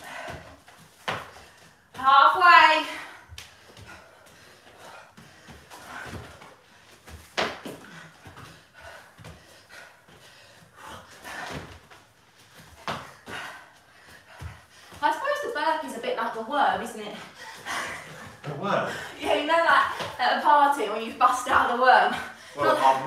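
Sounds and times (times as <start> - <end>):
feet and knees thumping on mats: 0.0 - 15.5, 16.2 - 21.9.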